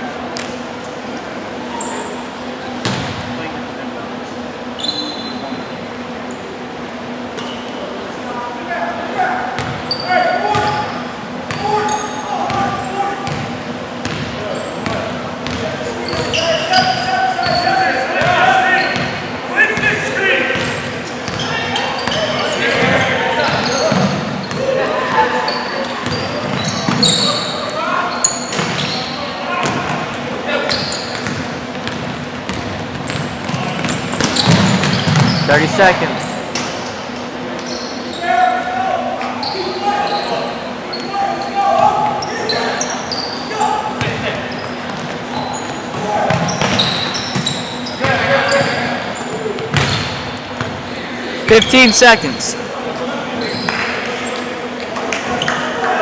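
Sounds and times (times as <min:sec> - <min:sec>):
sneakers squeaking: 0:01.7 - 0:03.3, 0:04.6 - 0:05.6, 0:07.4 - 0:08.0, 0:09.5 - 0:38.4, 0:39.3 - 0:52.6, 0:53.4 - 0:55.7
players shouting: 0:51.4 - 0:52.6.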